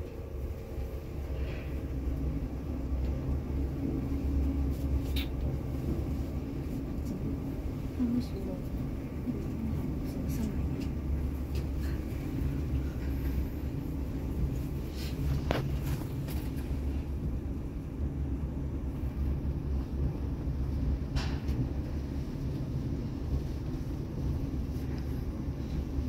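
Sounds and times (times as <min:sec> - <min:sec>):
lift rumbling through shaft: 0:00.0 - 0:26.0.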